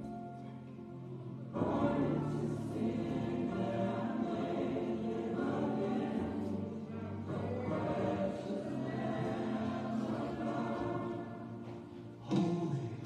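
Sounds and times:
choir singing gospel music: 0.0 - 13.0.

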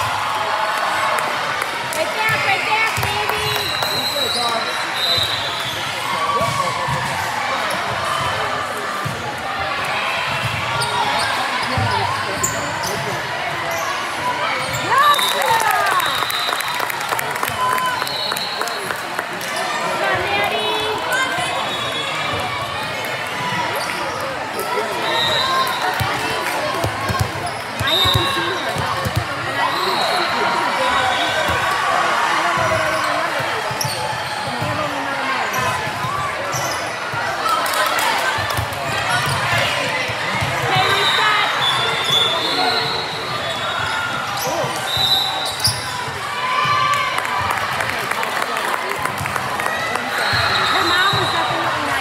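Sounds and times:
sneakers squeaking on court: 10.3 - 14.9
voices chattering and calling: 17.4 - 46.4.

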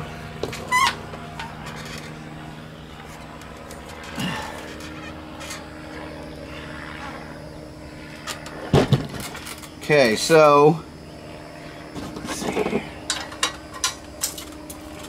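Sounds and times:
low hum: 0.0 - 15.0.

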